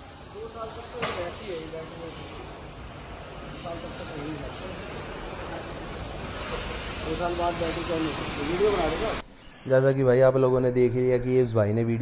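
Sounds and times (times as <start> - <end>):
brief hiss: 0.0 - 9.7.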